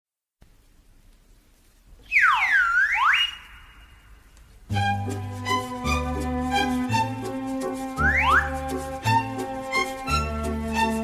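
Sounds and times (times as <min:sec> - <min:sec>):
electronic whistle-like swooping tone: 0:02.1 - 0:04.2, 0:08.0 - 0:08.6.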